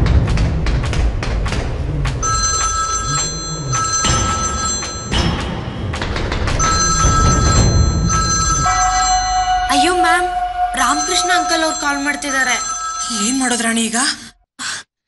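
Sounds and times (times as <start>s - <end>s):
mobile phone ringtone: 2.2s - 5.2s, 6.6s - 13.5s
background music: 5.2s - 12.4s.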